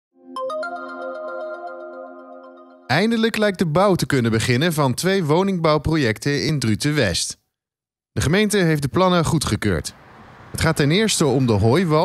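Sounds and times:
held synth chord: 0.2s - 2.9s
bell-like notes: 0.2s - 3.2s.

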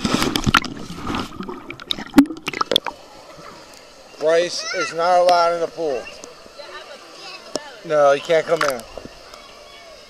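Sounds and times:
water sloshing and gurgling: 0.0s - 4.5s.

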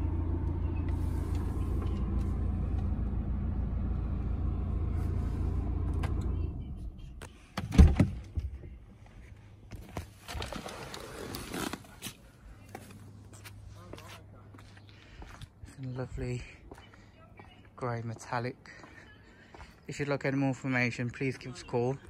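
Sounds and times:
diesel engine idling: 0.0s - 7.3s.

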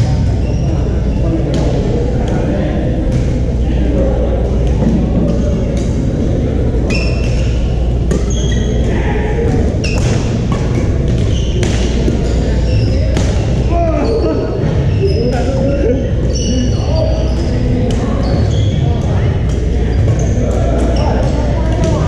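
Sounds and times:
sneakers squeaking on floor: 0.0s - 1.8s, 6.8s - 22.0s
low rumble of gym: 0.0s - 22.0s
players' voices: 0.0s - 22.0s.

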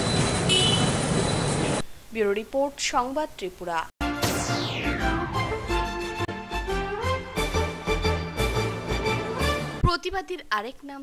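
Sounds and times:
street traffic noise: 0.0s - 1.9s.

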